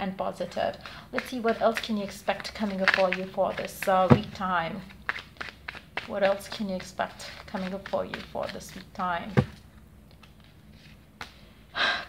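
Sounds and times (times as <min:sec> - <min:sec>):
card handling: 0:01.2 - 0:11.4.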